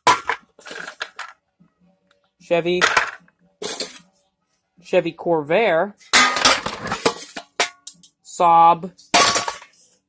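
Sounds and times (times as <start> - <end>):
metal hubcaps clattering: 9.0 - 9.9.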